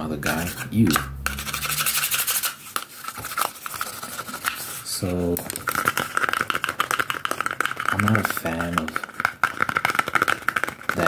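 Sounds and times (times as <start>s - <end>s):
fingers tapping on paper cup: 5.2s - 11.0s.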